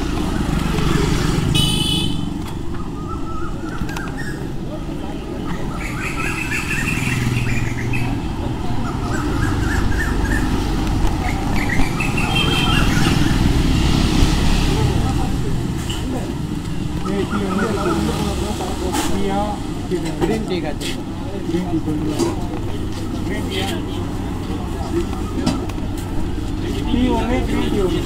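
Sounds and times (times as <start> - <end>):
motorcycles: 0.0 - 28.0
traffic rumble: 0.0 - 28.0
people talking: 3.9 - 6.3, 14.6 - 28.0.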